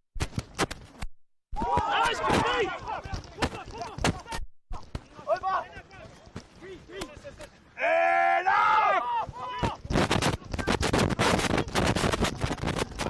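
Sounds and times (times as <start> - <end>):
players shouting: 1.6 - 4.4, 5.0 - 9.9.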